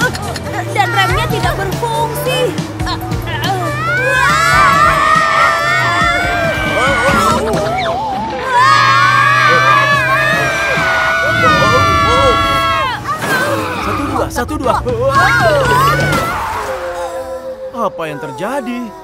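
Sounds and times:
background music with low bass: 0.0 - 19.0
cartoon children screaming: 3.6 - 14.3, 15.1 - 17.4.

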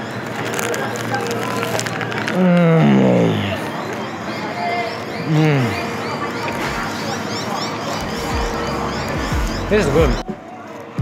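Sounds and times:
chewing clicks: 0.0 - 2.6
man humming with enjoyment: 2.3 - 3.7, 5.3 - 5.9.

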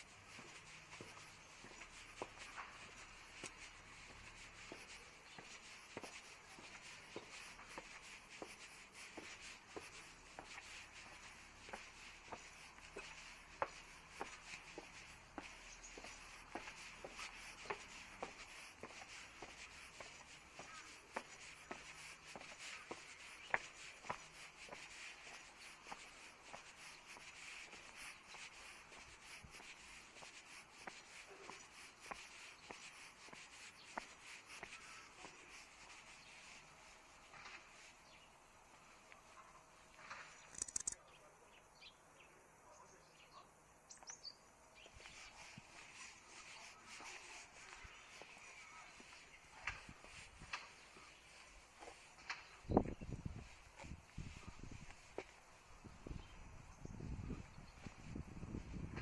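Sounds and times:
footsteps on pavement: 0.0 - 41.0, 43.9 - 59.0
steady low hiss: 0.0 - 42.9.

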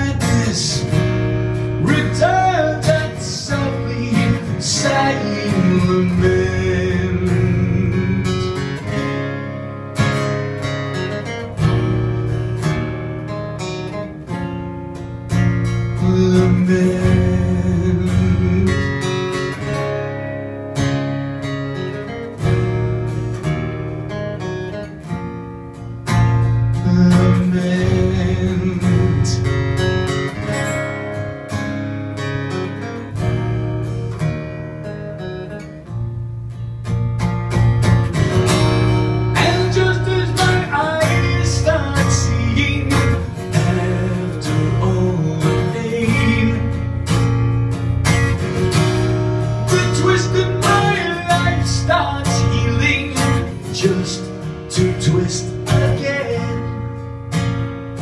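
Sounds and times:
electric guitar strummed and picked: 0.0 - 58.0.

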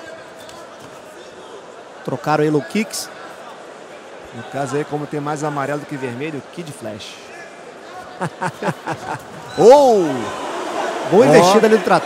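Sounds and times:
arena crowd noise: 0.0 - 12.0
man commentating: 11.1 - 12.0.

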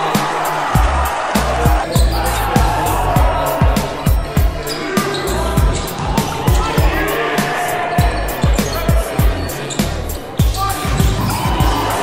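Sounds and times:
bass drum beat: 0.3 - 4.7, 5.3 - 7.2, 8.0 - 12.0.

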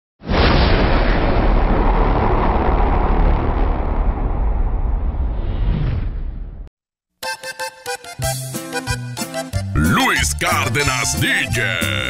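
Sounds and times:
cinematic explosion boom: 0.2 - 6.7.

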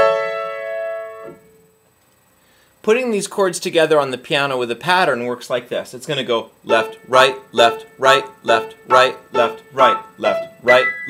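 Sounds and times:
piano chord: 0.0 - 1.4.

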